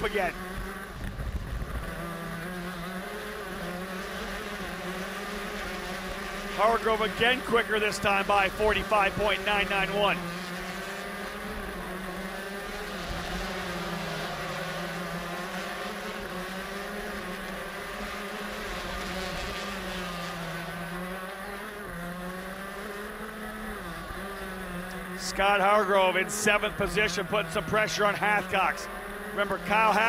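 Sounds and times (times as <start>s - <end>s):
two-stroke kart engine buzzing: 0.0s - 30.0s.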